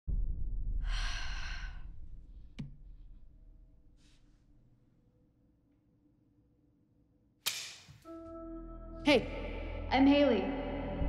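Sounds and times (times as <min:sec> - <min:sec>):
deep low drone: 0:00.1 - 0:02.6, 0:08.4 - 0:11.0.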